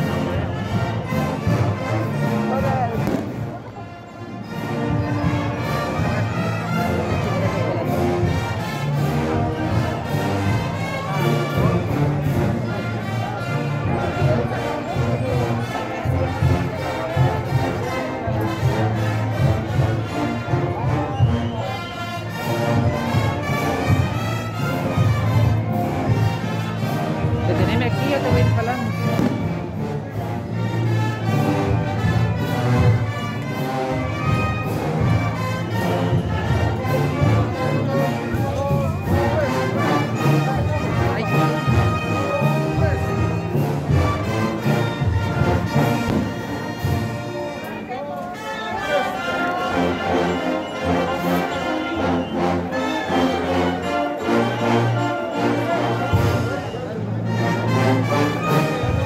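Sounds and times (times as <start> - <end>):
brass band playing a march: 0.0 - 59.0
crowd voices: 0.0 - 59.0.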